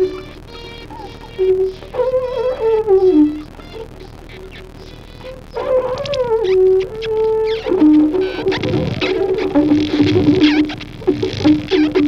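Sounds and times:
effects-processed electric guitar: 0.0 - 12.0
saxophone: 0.0 - 12.0.

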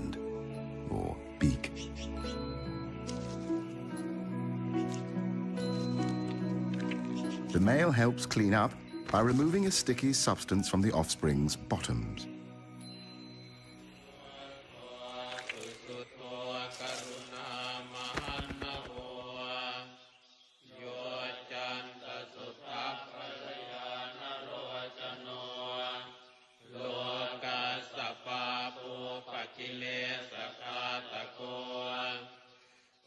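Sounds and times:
voices chanting: 13.8 - 32.7
rapid clicks: 18.1 - 19.1.

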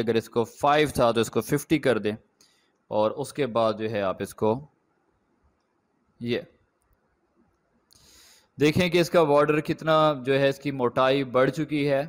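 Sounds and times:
soft hiss: 5.1 - 8.8.

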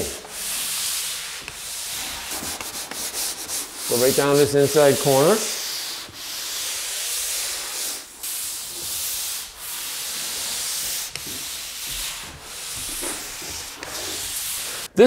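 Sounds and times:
drywall tool scraping compound: 0.0 - 15.0.

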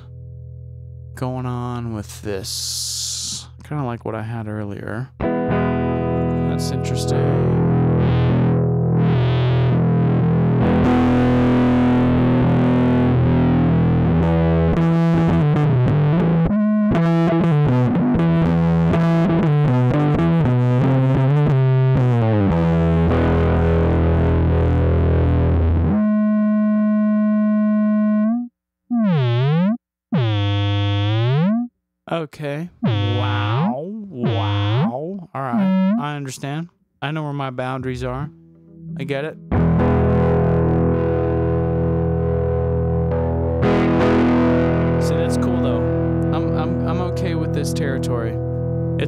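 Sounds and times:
distorted electric guitar: 0.0 - 3.8, 5.2 - 31.7, 32.8 - 36.4, 37.3 - 49.0.

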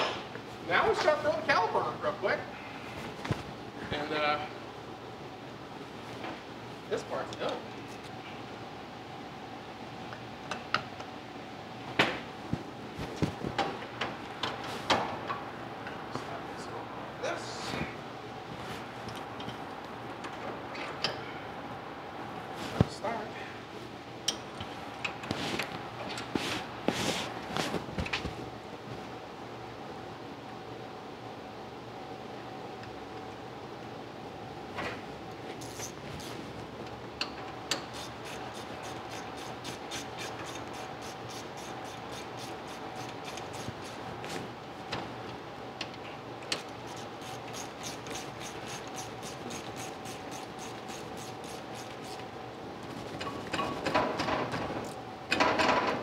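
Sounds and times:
steady hum: 0.0 - 55.4.

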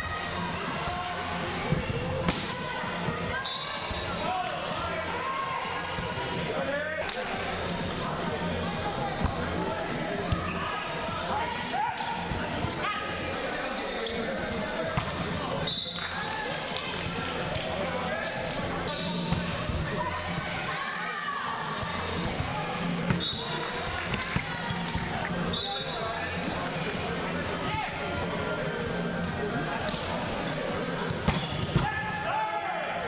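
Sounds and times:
players' voices: 0.0 - 33.0
sneakers squeaking on court: 1.7 - 2.7, 12.0 - 12.8, 30.5 - 31.8.

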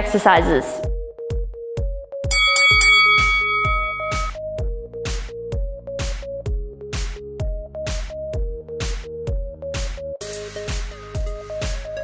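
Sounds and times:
bell chime ringing: 2.3 - 4.4
electronic dance music: 2.8 - 4.4.

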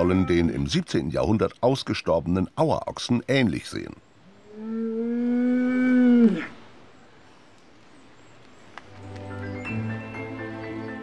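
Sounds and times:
soft music: 0.0 - 0.8, 8.9 - 11.0.

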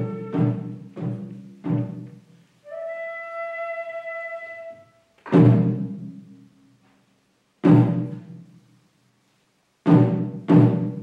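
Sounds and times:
flute long note: 0.0 - 0.8, 2.6 - 5.1.

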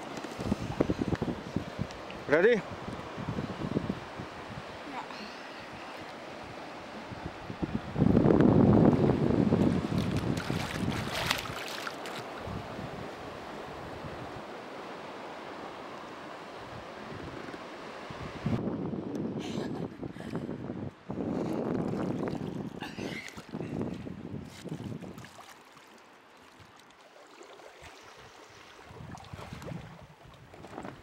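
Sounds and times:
wind and water rushing: 0.0 - 31.0
water splashing: 9.6 - 12.5, 24.5 - 31.0.

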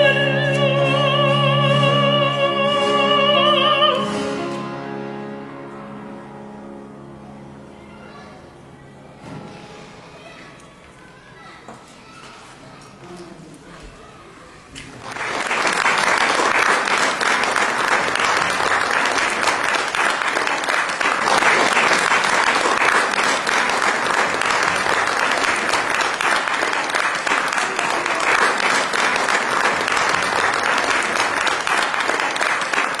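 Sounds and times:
audience applauding: 14.8 - 33.0.

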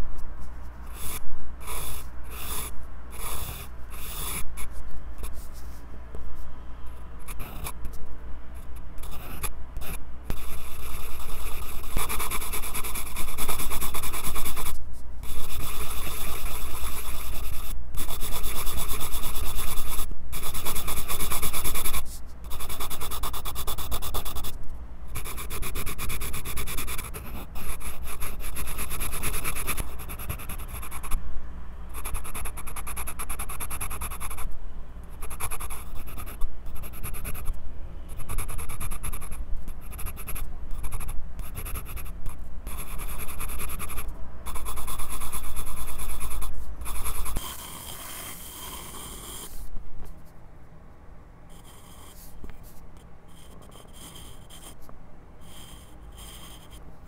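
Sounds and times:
pencil scratching on paper: 0.8 - 5.8, 7.2 - 7.8, 8.6 - 24.6, 25.2 - 31.2, 31.9 - 34.5, 35.2 - 37.5, 38.2 - 49.7, 51.5 - 54.8, 55.4 - 56.8.

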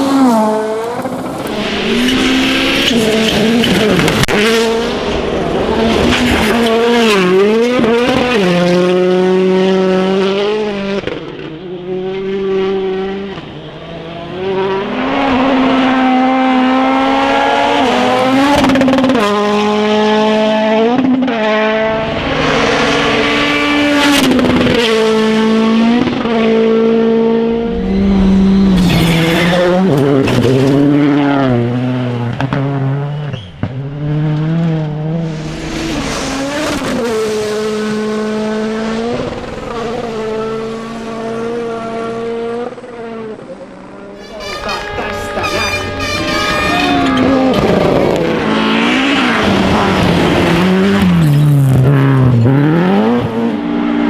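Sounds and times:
rally car engines at full throttle: 0.0 - 54.0.

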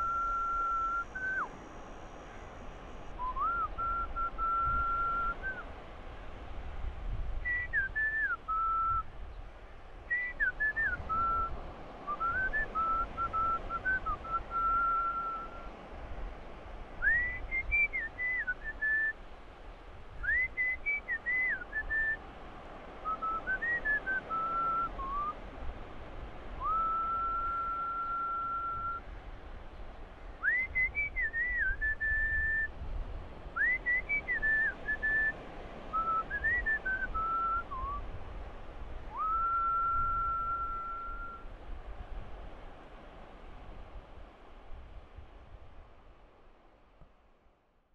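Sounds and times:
person whistling a tune: 0.0 - 1.5, 3.2 - 5.6, 7.5 - 9.1, 12.1 - 15.7, 17.0 - 19.1, 20.2 - 22.2, 23.1 - 25.4, 26.6 - 29.0, 30.4 - 32.7, 33.6 - 35.3, 35.9 - 38.0, 39.1 - 41.4.

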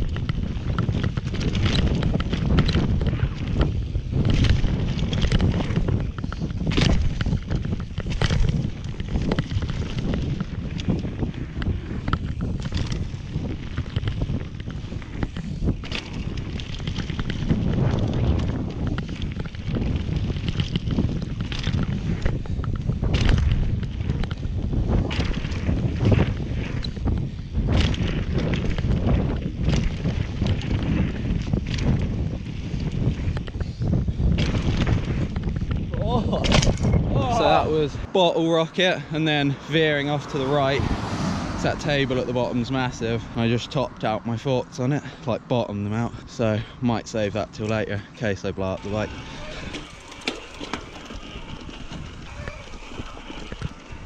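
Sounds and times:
tyres rumbling on dirt: 0.0 - 33.5, 34.1 - 54.0
bike clattering over bumps: 0.0 - 54.0
wind rush on microphone: 0.0 - 54.0.

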